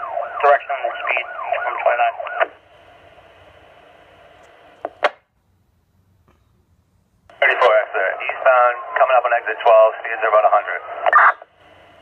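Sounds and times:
radio voices: 0.0s - 2.6s, 7.3s - 11.6s
radio static hiss: 0.1s - 5.2s, 7.3s - 12.0s
radio transmission click: 1.0s - 2.6s, 4.4s - 5.2s, 7.3s - 11.5s.

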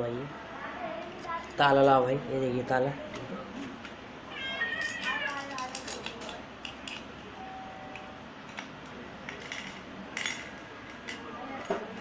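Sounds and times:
high-pitched meow-like call: 4.3s - 5.5s.

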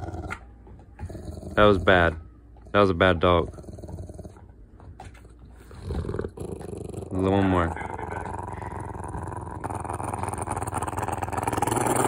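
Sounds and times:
dog rumbling purr: 0.0s - 0.4s, 1.0s - 12.0s.

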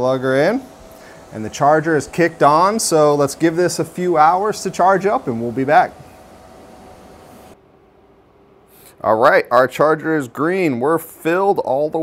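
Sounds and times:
charger cooling fan whirring: 0.0s - 7.6s.

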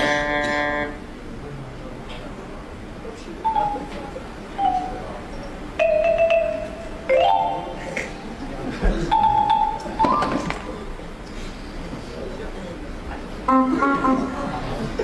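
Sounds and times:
steady background hum: 0.0s - 15.0s
xylophone-like notes: 5.8s - 8.2s, 9.1s - 10.3s.

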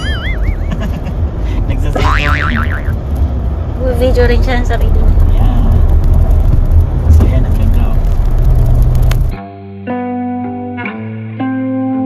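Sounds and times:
warbling tone: 0.0s - 0.7s, 2.0s - 3.0s
car engine and road rumble: 0.0s - 9.4s.

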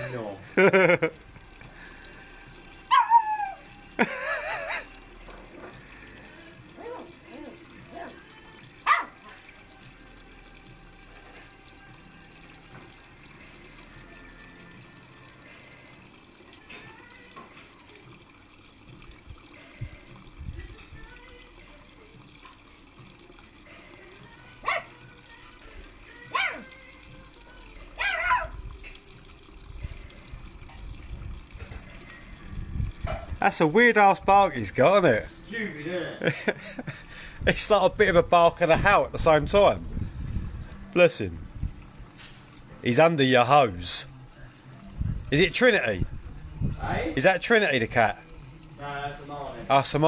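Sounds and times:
puppy barking and howling: 2.9s - 3.8s, 6.8s - 9.4s, 24.6s - 25.0s, 26.3s - 26.8s, 27.8s - 28.6s.

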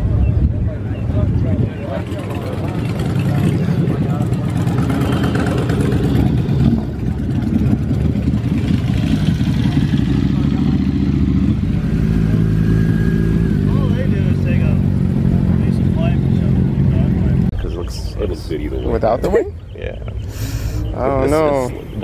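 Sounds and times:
voices in background: 0.0s - 22.0s
car engine idling: 2.0s - 18.9s.

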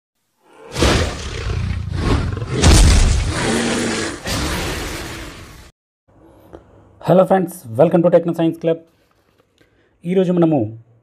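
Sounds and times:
dragon roar: 0.4s - 5.7s.

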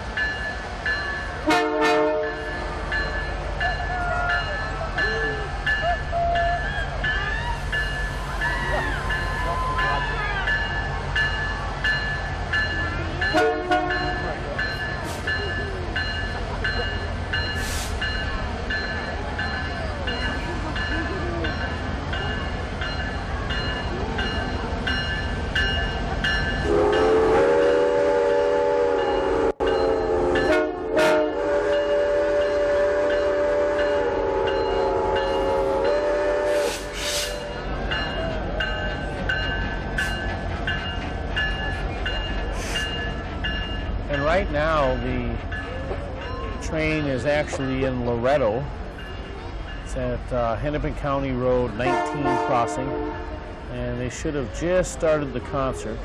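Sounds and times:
diesel locomotive engine rumble: 0.0s - 56.0s
locomotive bell ringing: 0.1s - 36.5s, 37.2s - 56.0s
train horn blasts: 1.4s - 2.9s, 13.3s - 14.2s, 26.6s - 37.5s, 51.8s - 53.5s.

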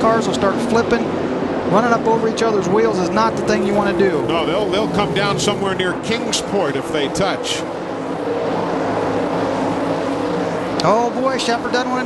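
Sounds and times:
race car engines at high pitch: 0.0s - 12.0s.

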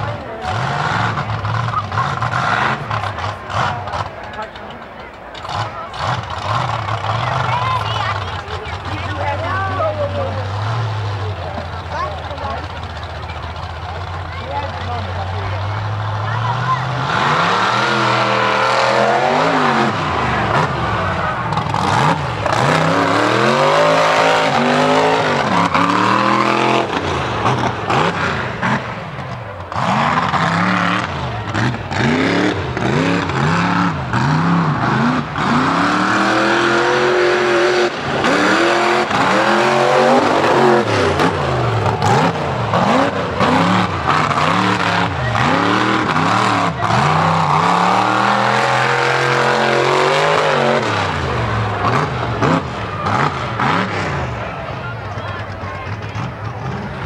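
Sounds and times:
truck engine idling: 0.0s - 57.0s
truck engine revving: 0.0s - 57.0s.

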